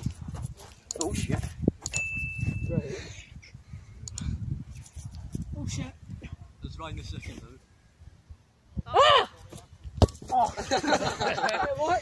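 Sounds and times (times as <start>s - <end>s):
high steady tone: 1.8s - 2.9s
young men talking: 6.6s - 7.6s
laughter: 10.5s - 12.0s.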